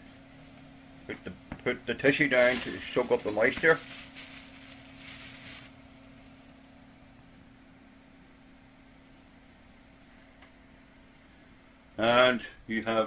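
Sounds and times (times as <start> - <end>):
computer humming: 0.6 - 12.1
tissue rustling: 2.2 - 5.8.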